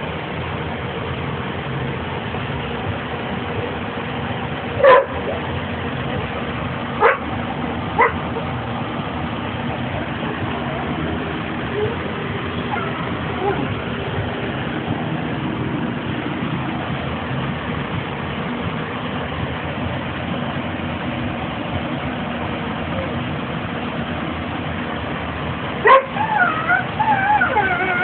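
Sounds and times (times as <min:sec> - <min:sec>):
small dog whining and yipping: 0:12.7 - 0:13.7, 0:25.9 - 0:28.0.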